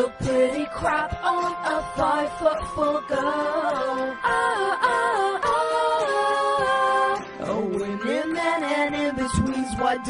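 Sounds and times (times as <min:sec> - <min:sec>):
pop song: 0:00.0 - 0:10.0.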